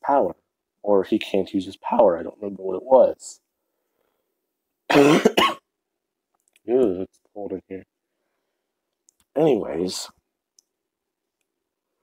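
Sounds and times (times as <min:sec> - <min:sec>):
person coughing: 0:04.9 - 0:05.7.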